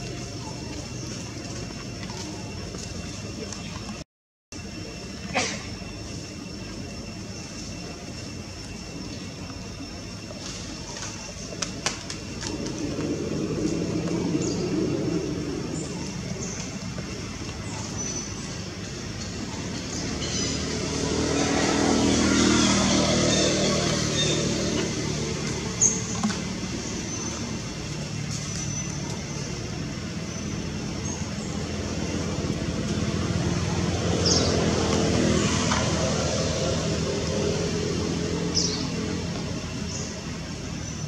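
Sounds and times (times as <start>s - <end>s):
vehicles passing by: 0.0s - 4.0s, 4.7s - 41.0s.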